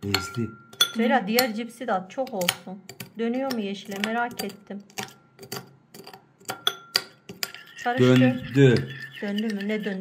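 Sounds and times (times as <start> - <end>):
metal spoon clinking on ceramic bowl: 0.0 - 1.6, 2.2 - 10.0.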